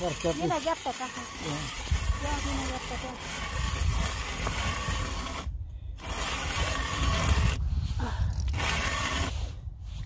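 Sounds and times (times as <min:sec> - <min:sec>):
wind buffeting microphone: 0:00.2 - 0:10.0.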